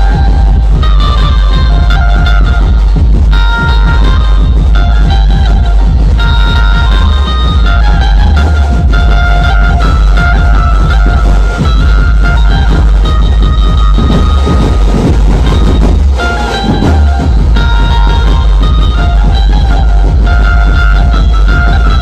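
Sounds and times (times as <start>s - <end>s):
loud electronic dance music: 0.0s - 22.0s.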